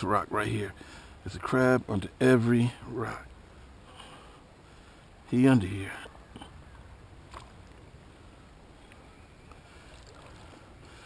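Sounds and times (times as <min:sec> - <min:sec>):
water lapping and stirring: 0:08.9 - 0:11.0.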